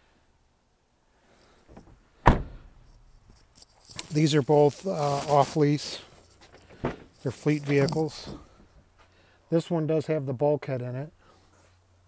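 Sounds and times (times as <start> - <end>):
van door shutting thunk: 1.8 - 2.7.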